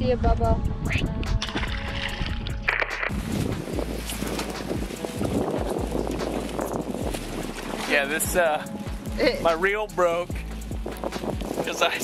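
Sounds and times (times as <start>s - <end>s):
quiet background music: 0.0s - 12.0s
wind rushing over microphone: 0.0s - 12.0s.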